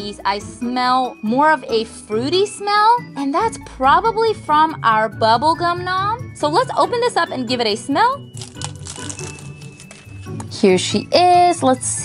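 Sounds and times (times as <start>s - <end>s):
plastic shrink-wrap crinkling: 8.3s - 10.3s.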